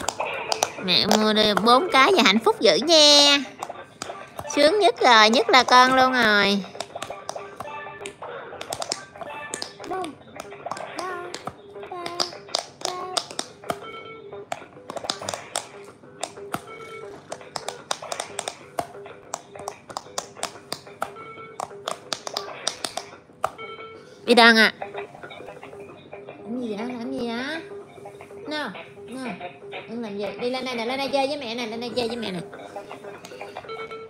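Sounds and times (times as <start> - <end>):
fingers tapping silicone buttons: 0.0 - 2.9, 3.6 - 13.8, 14.5 - 23.6.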